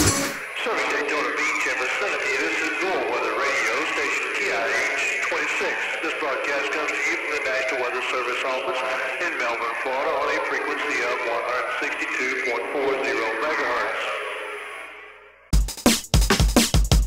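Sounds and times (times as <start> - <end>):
radio-filtered voice sample: 0.0 - 15.4.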